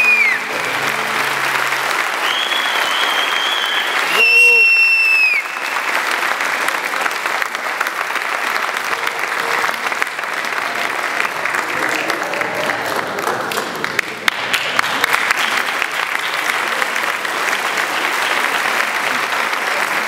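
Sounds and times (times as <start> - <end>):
audience applauding: 0.0 - 20.0
high whistles: 2.2 - 5.9.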